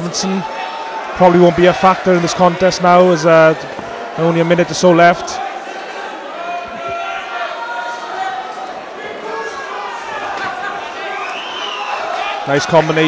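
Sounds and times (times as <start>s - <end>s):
crowd shouting: 0.0s - 13.0s.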